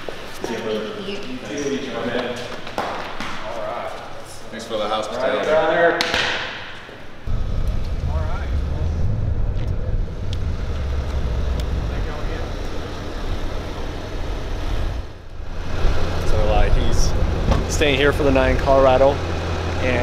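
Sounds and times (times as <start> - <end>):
diesel engine idling: 7.3 - 20.0.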